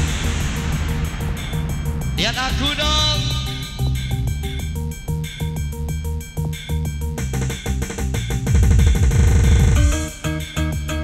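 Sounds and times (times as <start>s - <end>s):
dance music on keyboard: 0.0s - 11.0s
programmed drum beat: 0.0s - 11.0s.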